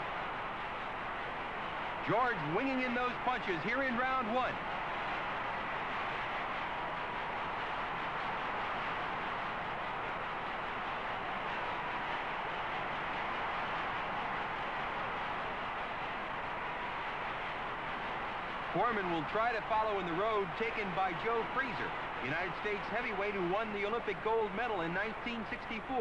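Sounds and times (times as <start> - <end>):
arena crowd noise: 0.0 - 26.0.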